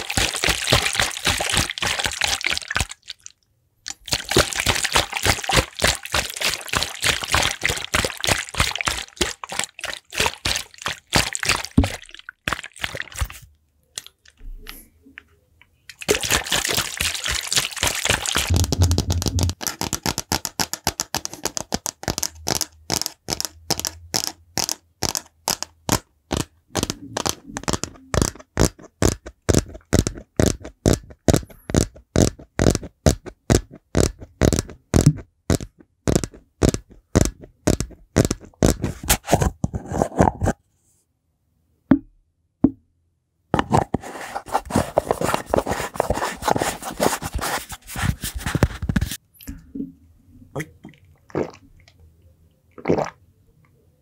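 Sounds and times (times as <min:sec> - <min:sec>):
scratchy rubbing: 0:18.1 - 0:25.6, 0:26.3 - 0:40.6, 0:43.7 - 0:49.2
fingers tapping plastic bottle: 0:18.1 - 0:39.1.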